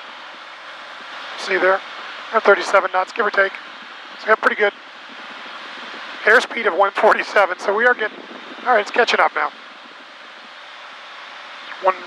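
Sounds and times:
airflow noise: 0.0s - 12.0s
man speaking: 1.4s - 3.6s, 4.2s - 4.8s, 6.2s - 9.5s, 11.7s - 12.0s.

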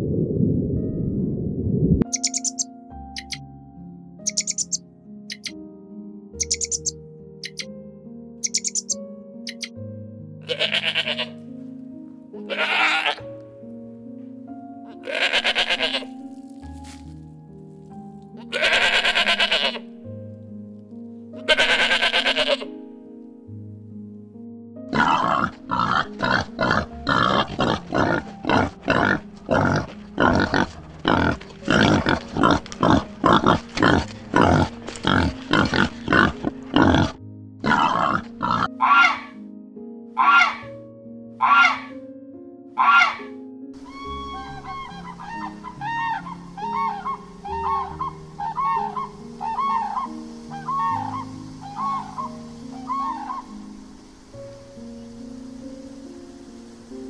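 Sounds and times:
soft background music: 0.0s - 57.0s
warthogs grunting: 24.9s - 39.1s
goose calling: 37.7s - 39.3s, 40.2s - 40.6s, 41.4s - 41.9s, 42.8s - 43.2s, 43.8s - 53.5s.

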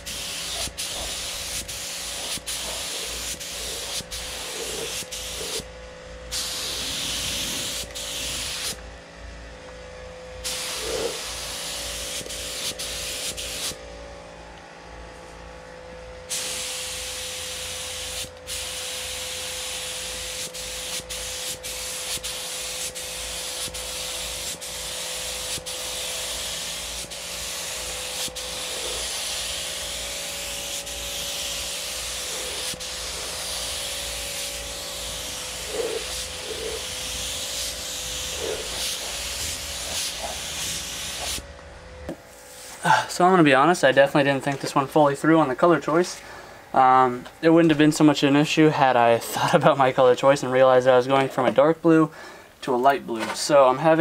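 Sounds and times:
paint spray gun hissing: 0.0s - 5.6s, 6.3s - 8.8s, 10.4s - 13.8s, 16.3s - 41.4s.

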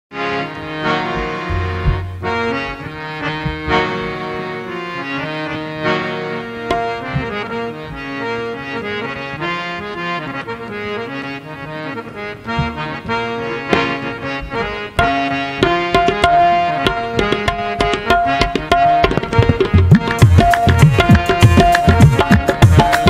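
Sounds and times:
harmonium melody: 0.1s - 23.0s
hand drum strokes: 1.0s - 4.1s.

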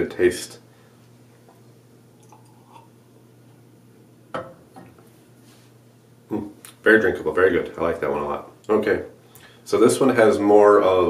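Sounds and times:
man sipping and tasting: 1.3s - 3.6s.

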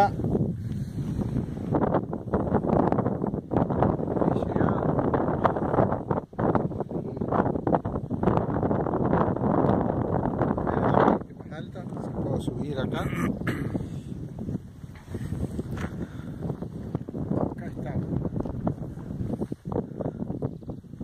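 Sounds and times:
strong gusting wind on microphone: 0.0s - 21.0s.

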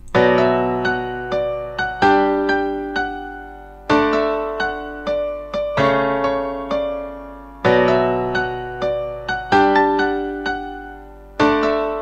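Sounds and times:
dry piano chords and notes: 0.0s - 12.0s.

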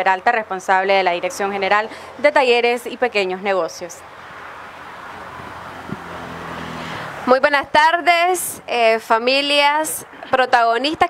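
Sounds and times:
background traffic rumble: 0.0s - 11.0s.

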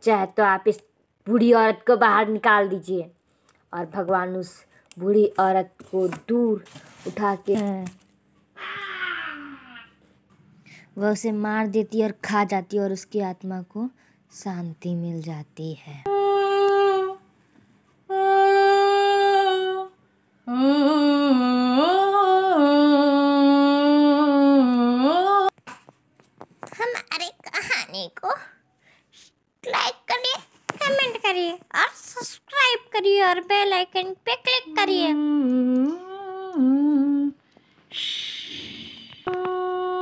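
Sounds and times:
person humming a steady note: 16.1s - 17.2s, 18.1s - 25.5s, 35.1s - 37.4s, 38.0s - 40.0s.

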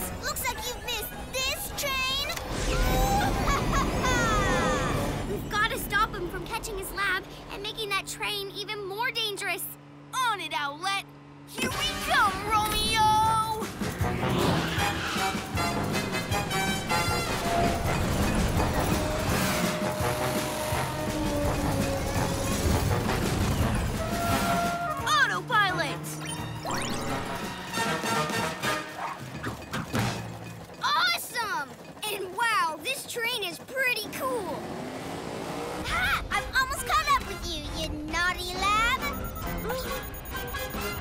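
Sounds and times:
vehicle sound effects: 0.0s - 41.0s
action music: 11.6s - 30.8s, 36.3s - 41.0s
warbling electronic chirps: 39.0s - 41.0s.

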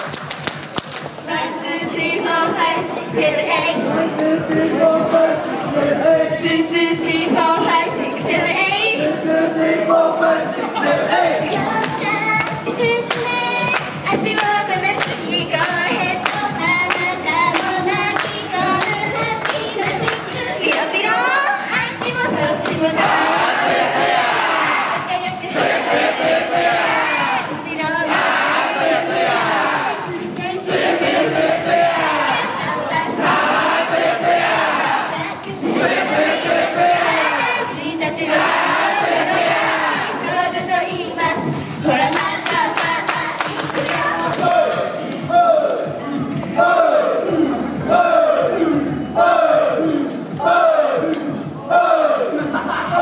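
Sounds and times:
crowd shouting in unison: 22.8s - 40.4s, 44.0s - 53.0s
crowd of fans shouting calls: 44.0s - 52.4s.

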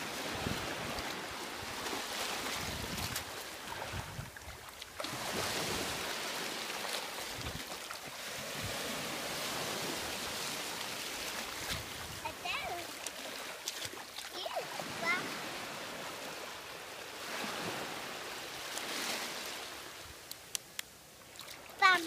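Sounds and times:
surf washing over sand: 0.0s - 22.0s
young child's voice: 12.2s - 13.0s, 14.3s - 15.4s, 21.8s - 22.0s.

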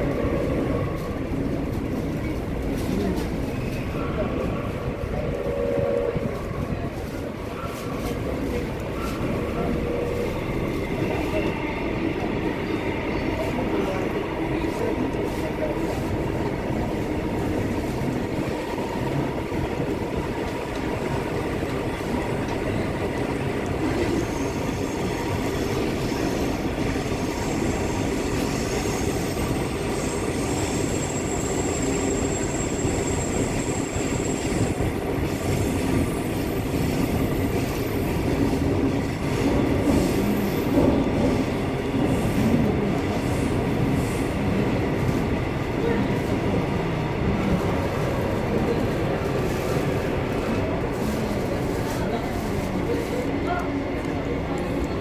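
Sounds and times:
subway train wheels rumbling: 0.0s - 55.0s.

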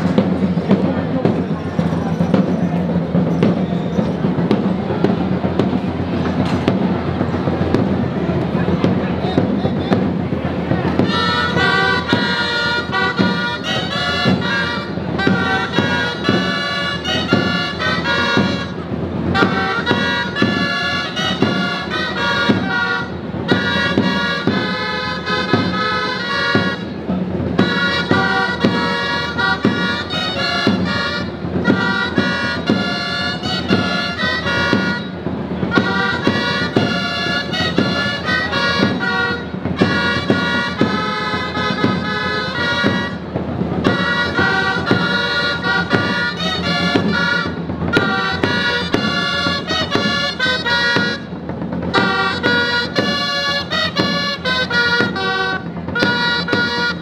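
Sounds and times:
shawms playing a loud tune: 0.0s - 57.0s
steady drum beat: 0.0s - 57.0s.

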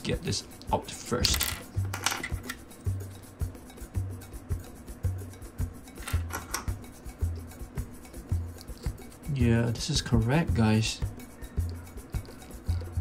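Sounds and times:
background music with soft beat: 0.0s - 13.0s.

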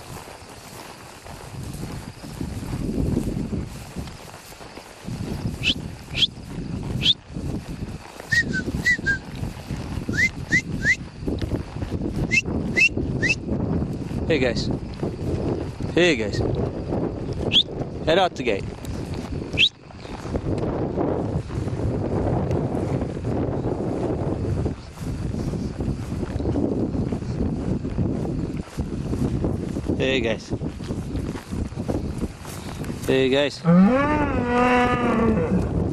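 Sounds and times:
wind rustling grass: 0.0s - 35.9s
person whistling: 8.3s - 9.2s, 10.1s - 11.0s, 12.3s - 13.4s.

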